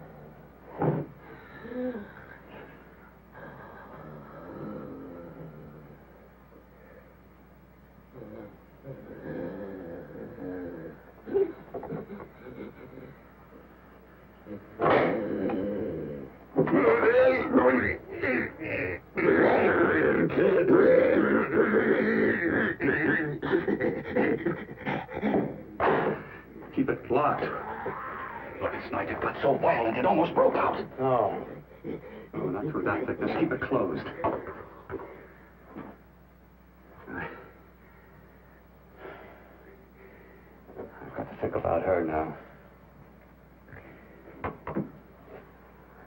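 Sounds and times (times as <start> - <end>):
film soundtrack hum and hiss: 0.0 - 46.0
creature growling groan: 3.4 - 5.9, 8.2 - 11.5, 14.5 - 16.3, 18.1 - 26.3
monster growling and grunting: 18.2 - 25.6.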